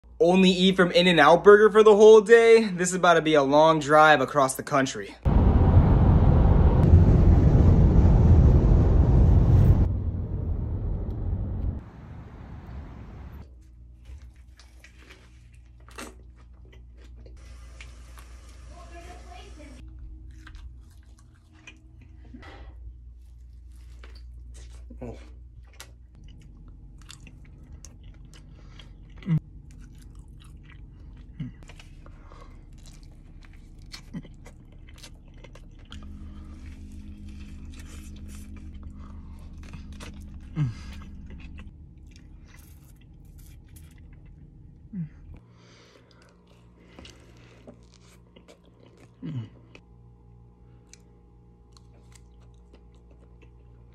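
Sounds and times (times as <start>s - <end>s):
steady low hum: 5.2s - 18.6s, 19.6s - 53.9s
biting and chewing food: 13.4s - 17.9s, 19.8s - 53.9s
crunching and clicking mouth sounds: 23.8s - 36.4s, 37.2s - 49.9s, 50.7s - 53.9s.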